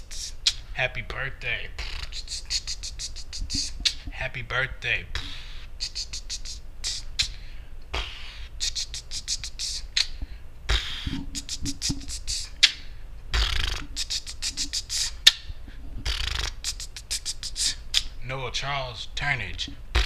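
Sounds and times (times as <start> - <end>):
beatboxing clicks and hisses: 0.0 - 0.8, 1.6 - 4.3, 5.1 - 18.2, 19.6 - 20.0
breathy beatbox puff: 0.0 - 0.8, 1.7 - 4.2, 5.1 - 18.2.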